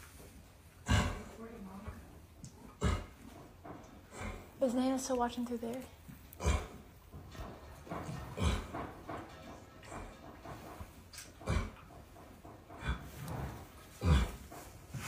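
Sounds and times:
horse grunting: 0.8 - 1.4, 2.5 - 4.6, 6.2 - 15.0.

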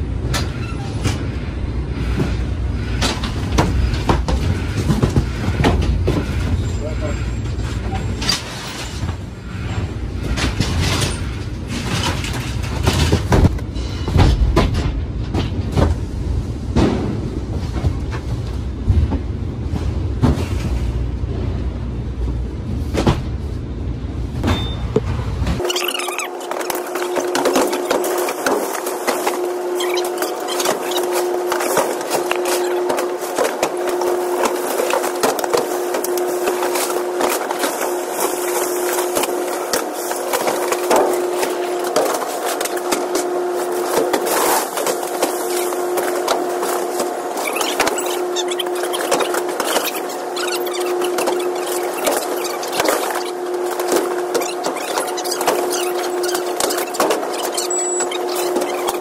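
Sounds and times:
cardboard boxes rattling on rollers: 2.0 - 15.8, 25.6 - 59.0.

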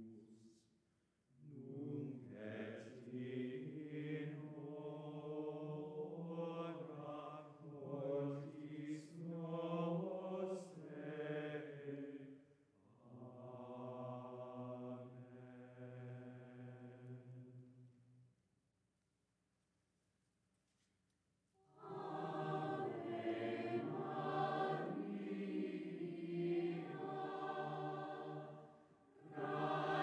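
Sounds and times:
low voices chanting: 21.8 - 30.0.

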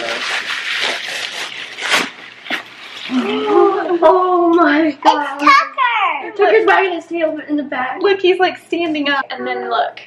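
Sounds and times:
paper and bubble wrap crinkling: 0.0 - 4.0.

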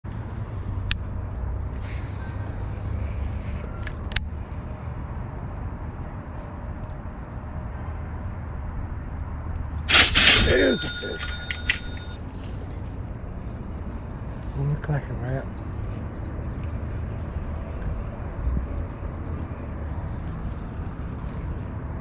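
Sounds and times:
low outdoor rumble: 9.6 - 21.8.

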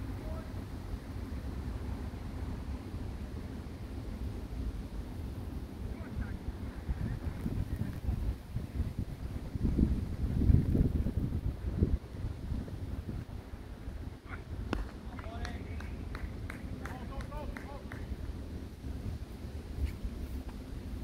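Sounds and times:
wind buffeting microphone: 4.8 - 21.0
players calling and shouting: 14.2 - 18.2.

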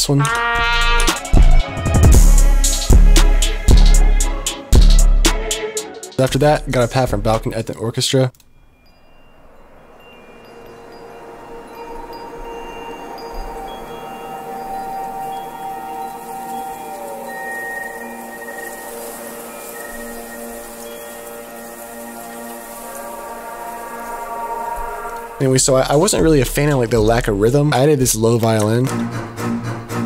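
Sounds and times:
sustained synth pad note: 9.6 - 26.2.

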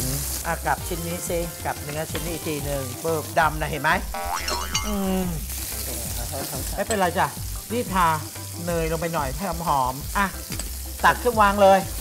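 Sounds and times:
burger patties sizzling on grill: 0.0 - 12.0
cartoon boing sound effect: 4.1 - 5.4.

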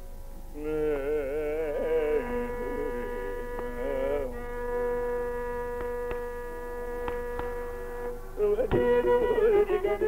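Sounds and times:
person singing: 0.6 - 5.8
tambura drone: 0.7 - 10.0
faint taps: 5.7 - 6.3, 7.0 - 7.6.

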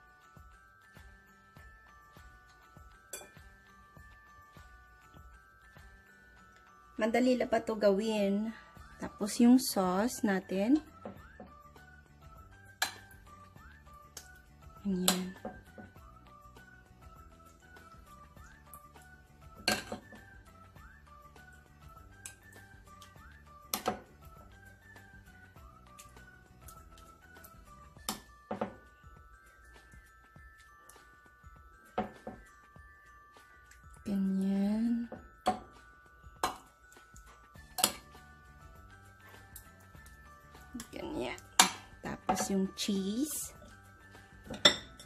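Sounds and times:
background music with repeating melody: 0.0 - 45.0
metal spoon knocking glass dish: 44.5 - 45.0.

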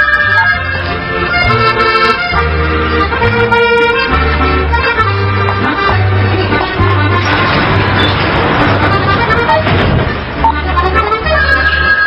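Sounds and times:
accordion-led music with bass: 0.0 - 12.0.

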